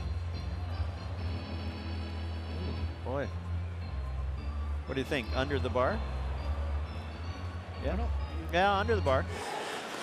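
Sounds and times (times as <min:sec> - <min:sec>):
crowd noise: 0:00.0 - 0:10.0
music playing: 0:00.0 - 0:10.0.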